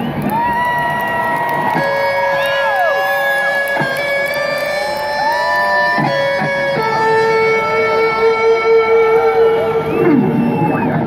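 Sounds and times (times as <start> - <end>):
electric guitar solo: 0.2 - 11.0.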